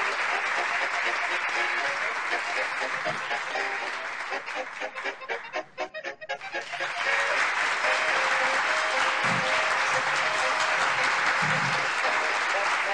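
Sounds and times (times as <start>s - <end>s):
crowd clapping: 0.0s - 5.8s, 6.4s - 12.9s.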